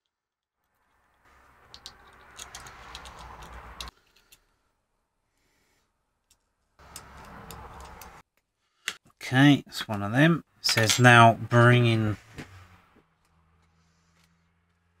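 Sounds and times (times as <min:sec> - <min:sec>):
tweezers and screws clicking: 0:01.7 - 0:04.4, 0:06.2 - 0:08.2.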